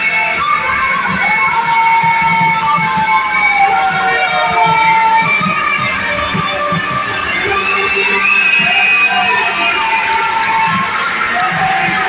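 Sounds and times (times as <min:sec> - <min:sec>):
live band dance music: 0:00.0 - 0:12.0
long held high note: 0:00.0 - 0:12.0
steady low beat: 0:00.6 - 0:12.0.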